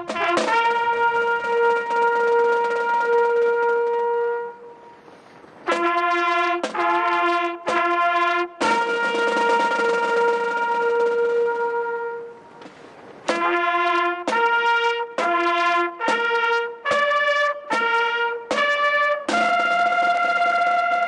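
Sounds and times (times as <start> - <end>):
solo trumpet playing a slow call: 0.0 - 12.7, 13.3 - 21.0.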